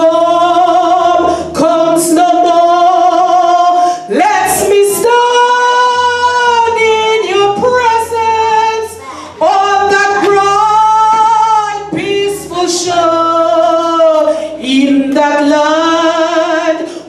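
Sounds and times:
woman singing into a microphone: 0.0 - 17.0.

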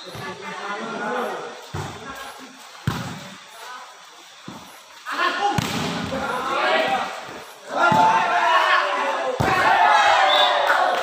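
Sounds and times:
volleyball being hit: 2.8 - 3.2, 5.6 - 6.2, 7.8 - 8.3, 9.3 - 9.8
people shouting: 6.2 - 11.0.

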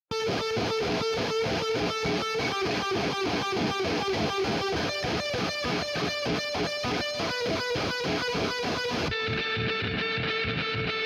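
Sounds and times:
electric guitar picking one note: 0.1 - 10.9.

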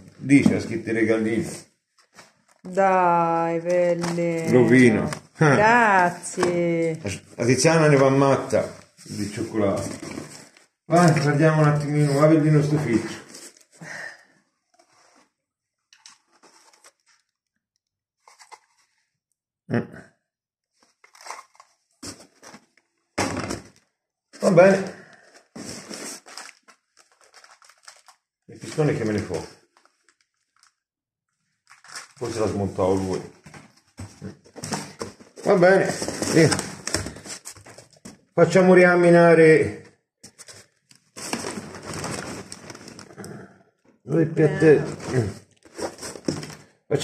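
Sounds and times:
man's voice: 4.5 - 5.8, 44.1 - 45.4
cardboard rustling: 7.9 - 13.8, 16.0 - 17.2, 18.2 - 19.0, 20.7 - 23.8, 25.2 - 30.8, 31.6 - 38.3, 40.2 - 43.1, 44.8 - 46.8
plastic parts handled: 25.6 - 28.2
hands rummaging in cardboard box: 41.2 - 43.1.

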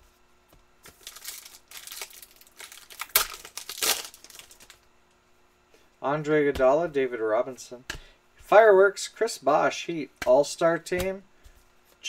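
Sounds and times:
wrapper crinkling and tearing: 0.8 - 4.8.

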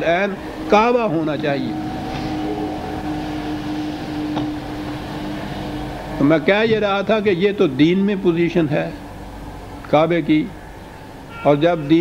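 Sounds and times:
low rumble: 0.0 - 9.8
steady hum: 0.0 - 11.4.

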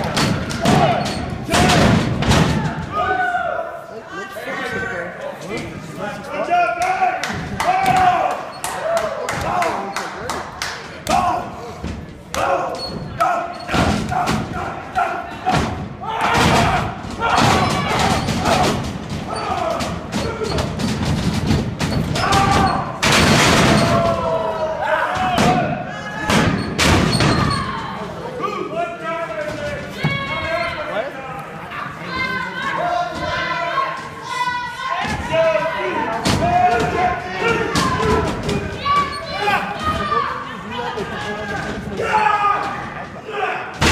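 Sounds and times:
crowd shouting: 11.0 - 20.8, 22.1 - 26.6, 31.7 - 43.9.

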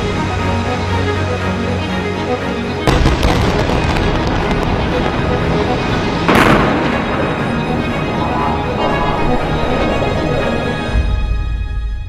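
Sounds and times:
background music: 0.0 - 12.0
loud explosion: 2.8 - 7.8
rumbling: 2.8 - 12.0.

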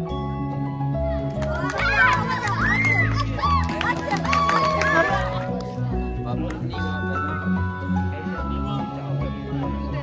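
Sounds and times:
background music: 0.0 - 10.0
children clapping: 1.3 - 5.7.

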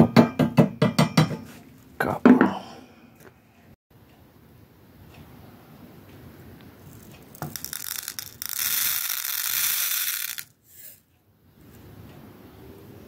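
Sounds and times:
beads pouring into plastic cup: 6.9 - 11.0.

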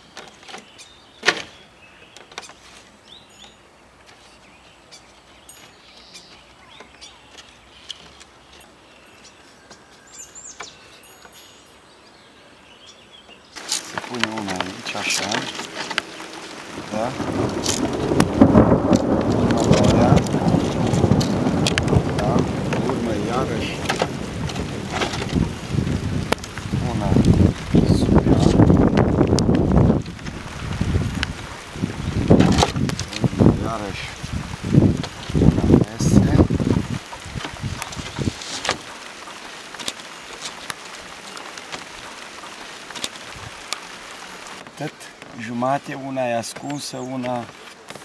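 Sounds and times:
wind buffeting microphone: 14.0 - 38.9, 43.3 - 43.7.

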